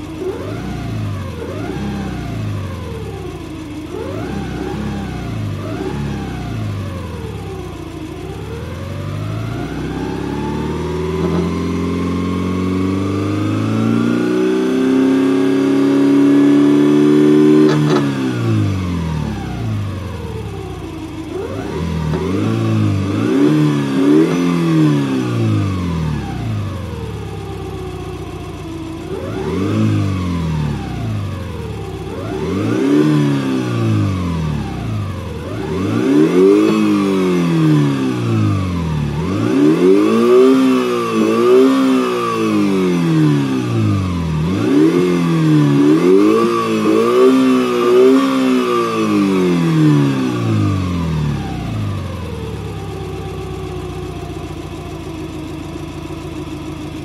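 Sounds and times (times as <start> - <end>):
engine revving in blips: 0.0 - 57.0
steady high whine: 17.7 - 41.6.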